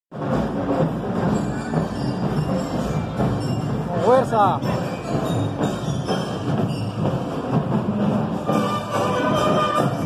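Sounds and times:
marching band playing: 0.1 - 10.0.

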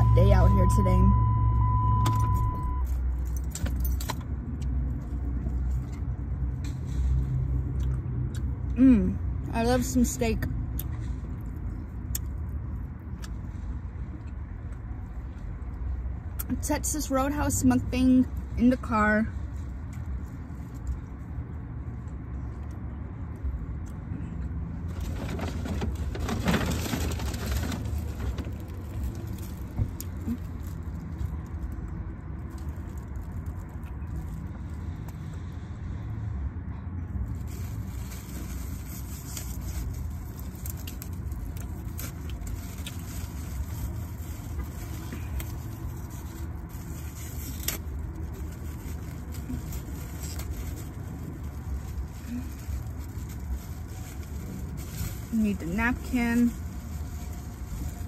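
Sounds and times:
car cabin rumble: 0.0 - 4.2.

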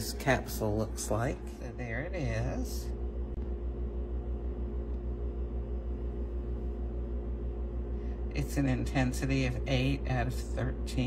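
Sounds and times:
milk frother motor humming: 0.0 - 11.0.

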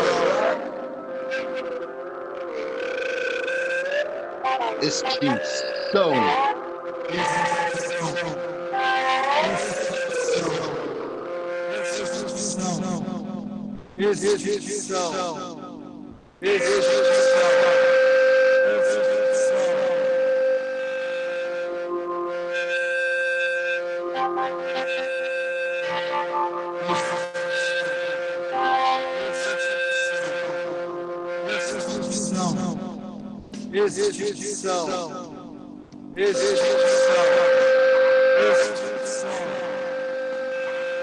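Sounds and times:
steady pitched drone: 6.7 - 41.0.

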